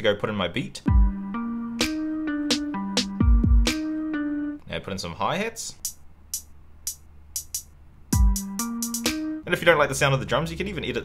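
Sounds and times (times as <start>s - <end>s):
electronic hi-hat ticks: 5.8s - 9.4s.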